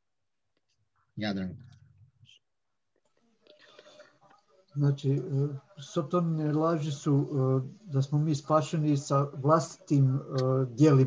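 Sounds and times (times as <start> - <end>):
murmured voices: 4.8 - 11.0.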